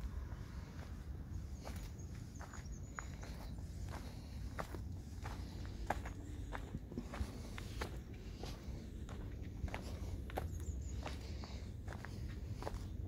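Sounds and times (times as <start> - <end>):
steady low rumble: 0.0 - 13.0
footsteps on gravel: 0.5 - 13.0.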